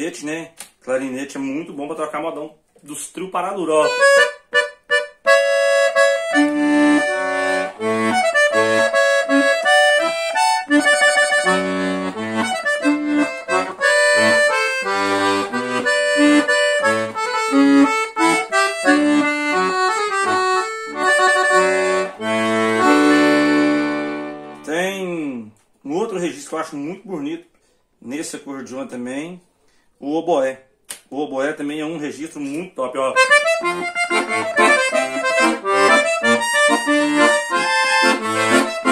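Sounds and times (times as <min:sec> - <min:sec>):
accordion bass and chords: 0:00.0 - 0:27.3, 0:31.6 - 0:38.9
accordion melody: 0:03.0 - 0:25.2, 0:32.4 - 0:38.9.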